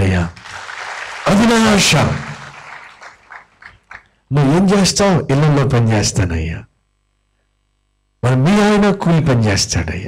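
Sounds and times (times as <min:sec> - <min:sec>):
man speaking over amplification: 0:00.0 - 0:00.4, 0:01.2 - 0:02.6, 0:04.3 - 0:06.7, 0:08.2 - 0:10.0
room noise: 0:00.0 - 0:10.0.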